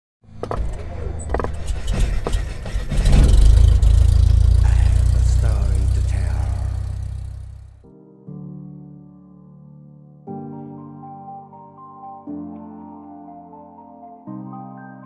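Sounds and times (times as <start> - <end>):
low rumble: 0.8 - 7.8.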